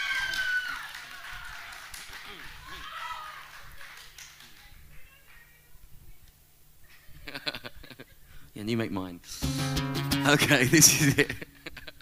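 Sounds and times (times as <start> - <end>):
guitar note ringing softly: 9.4 - 11.6
sound system hum: 9.4 - 12.0.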